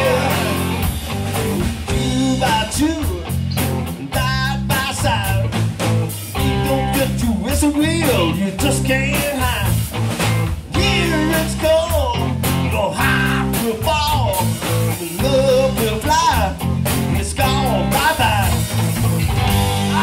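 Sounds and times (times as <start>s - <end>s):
bass guitar: 0.0s - 20.0s
drums: 0.0s - 20.0s
electric guitar lead: 0.0s - 20.0s.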